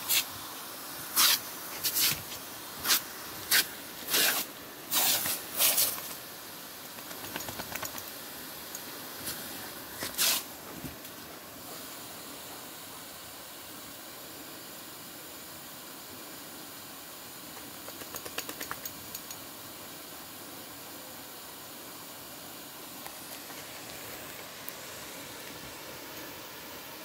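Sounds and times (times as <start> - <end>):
lawn sprinkler water spraying: 0.0 - 27.0
faint clicks: 17.6 - 19.4.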